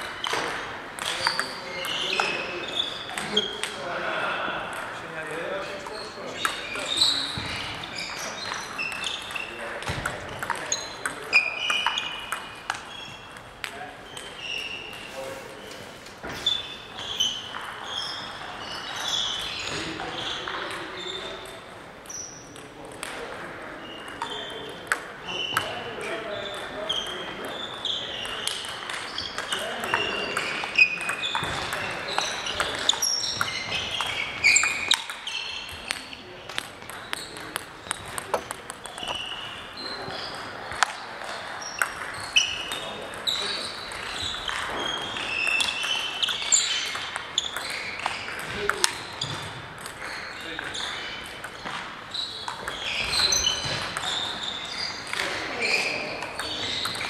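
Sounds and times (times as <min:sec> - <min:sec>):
table tennis balls pinging: 0:00.0 - 0:03.9, 0:04.6 - 0:15.1, 0:16.2 - 0:57.0.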